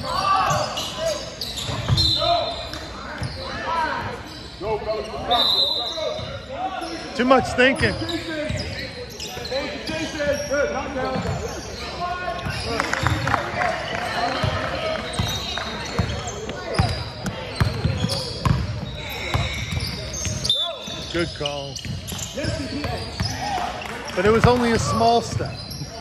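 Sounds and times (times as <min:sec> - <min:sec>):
voices in background: 0:00.0 - 0:26.0.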